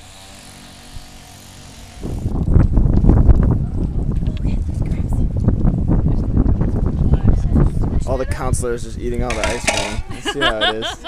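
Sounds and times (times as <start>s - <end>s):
wind buffeting microphone: 1.9s - 10.4s.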